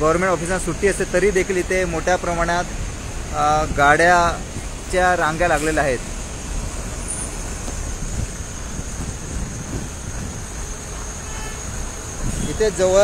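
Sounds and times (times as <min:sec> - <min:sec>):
vehicles idling in traffic: 0:00.0 - 0:13.0.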